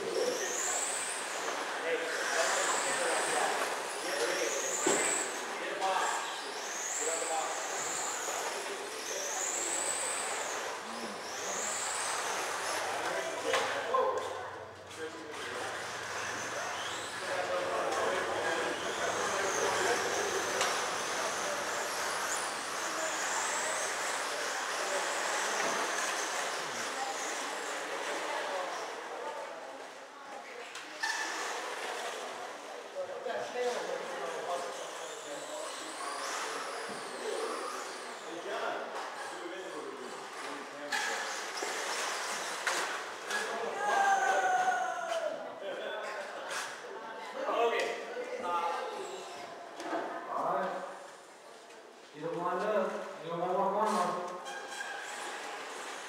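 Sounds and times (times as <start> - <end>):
rc car motors whining: 0.0 - 30.0, 30.7 - 47.6, 48.3 - 50.5, 53.8 - 56.0.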